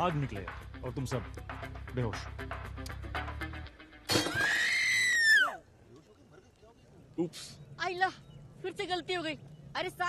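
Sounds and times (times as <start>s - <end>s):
background music: 0.0s - 5.1s
loud high-pitched cry: 4.3s - 5.6s.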